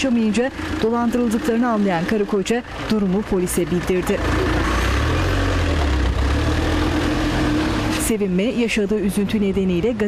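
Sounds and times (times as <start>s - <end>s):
van engine rumble: 0.0s - 10.0s.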